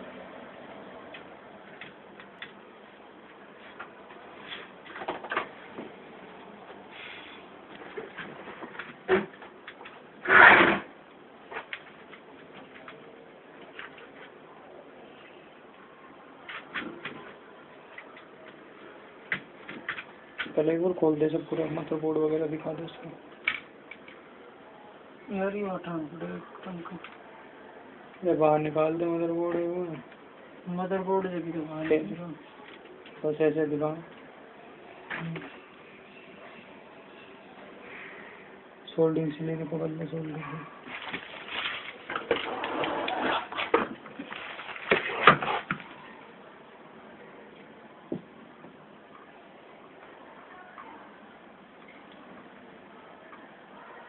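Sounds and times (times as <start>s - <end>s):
background hiss: 0.0s - 53.2s
hands handling laptop parts: 40.9s - 42.6s.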